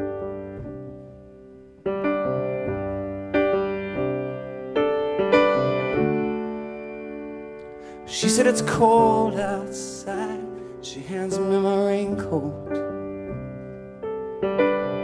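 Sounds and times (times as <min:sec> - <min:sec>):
solo piano chords: 0:00.0 - 0:15.0.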